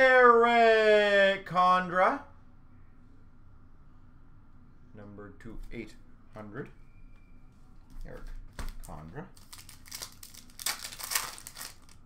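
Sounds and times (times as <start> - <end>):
wrapper crinkling and tearing: 8.8 - 12.0.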